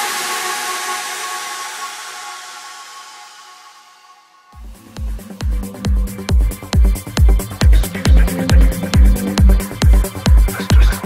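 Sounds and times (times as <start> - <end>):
held synth chord: 4.5 - 10.5.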